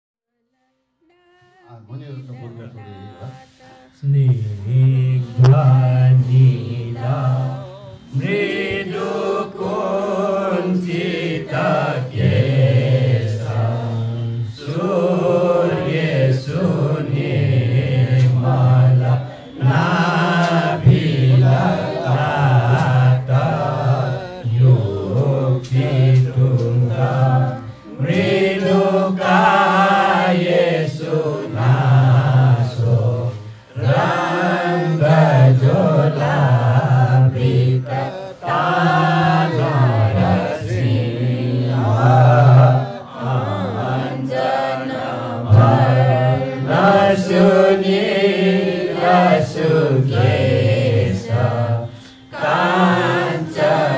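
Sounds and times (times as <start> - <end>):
group chanting a hymn: 1.2 - 53.9
man's low chanting voice: 1.6 - 44.6, 45.2 - 51.9.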